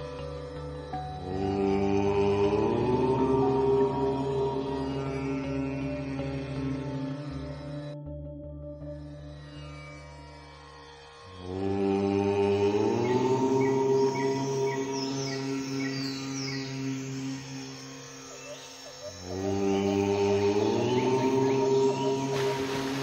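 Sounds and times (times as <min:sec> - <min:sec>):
person chanting: 0:00.0 - 0:08.0, 0:11.4 - 0:23.0
soft background music: 0:00.0 - 0:23.0.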